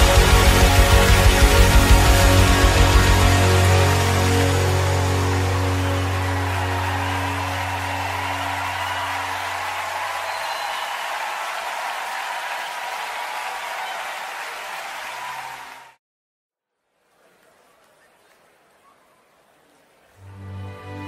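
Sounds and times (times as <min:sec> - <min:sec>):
worship band held chord: 0:00.0 - 0:10.0
crowd applauding: 0:00.0 - 0:16.0.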